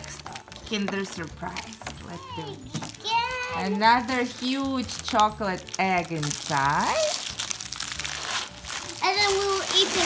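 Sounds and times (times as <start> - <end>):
foil wrapper crinkling: 0.0 - 10.0
young child's voice: 2.2 - 3.7, 9.0 - 10.0.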